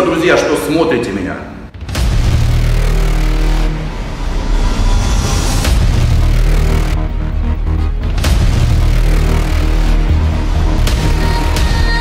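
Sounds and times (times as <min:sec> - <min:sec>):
deep rumbling bass drone: 0:01.7 - 0:12.0.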